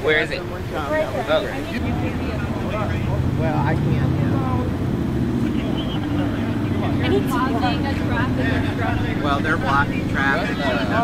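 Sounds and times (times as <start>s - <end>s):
car engines running: 0.0s - 11.0s
faint voices: 0.0s - 11.0s.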